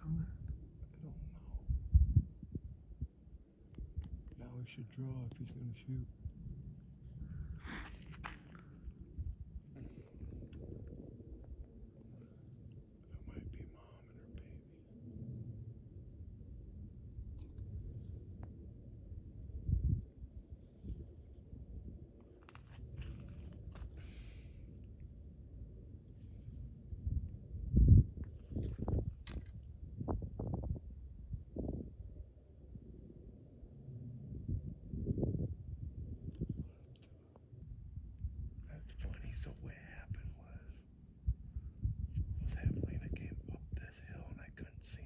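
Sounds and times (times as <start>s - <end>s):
men whispering: 0.0s - 1.8s, 4.3s - 6.2s, 13.0s - 14.9s, 38.6s - 40.8s, 42.4s - 45.0s
low rumble on microphone: 0.0s - 45.0s
small clicks and rustles: 22.2s - 24.2s, 28.2s - 29.7s.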